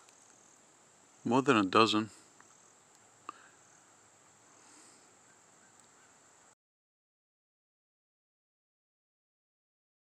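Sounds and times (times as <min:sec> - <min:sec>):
high-pitched insect trill: 0:00.0 - 0:03.0
sharp insect chirp: 0:00.0 - 0:06.6.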